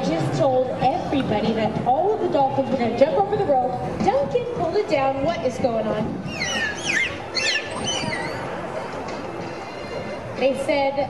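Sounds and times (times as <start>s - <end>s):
crowd murmur: 0.0s - 11.0s
dolphins whistling: 6.2s - 8.9s.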